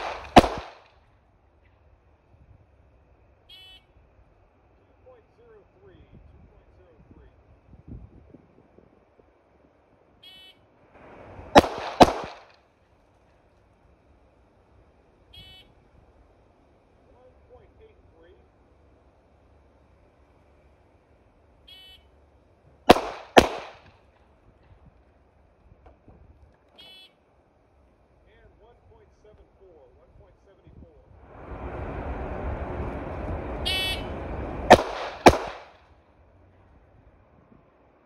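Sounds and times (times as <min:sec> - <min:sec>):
gunshots: 0:00.0 - 0:00.9, 0:11.5 - 0:12.6, 0:22.9 - 0:24.0, 0:34.7 - 0:35.8.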